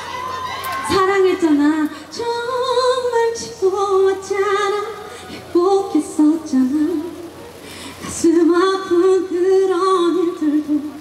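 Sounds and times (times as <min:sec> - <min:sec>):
woman singing unaccompanied: 0:00.8 - 0:07.4, 0:08.0 - 0:11.0.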